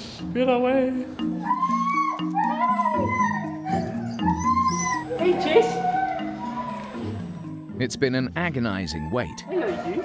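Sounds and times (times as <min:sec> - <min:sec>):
husky howling: 0:01.4 - 0:07.3, 0:08.9 - 0:10.0.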